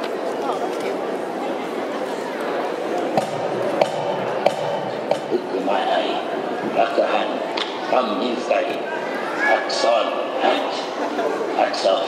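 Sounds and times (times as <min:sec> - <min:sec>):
crowd murmur in a hall: 0:00.0 - 0:12.0
sharp ringing knocks: 0:03.2 - 0:05.6.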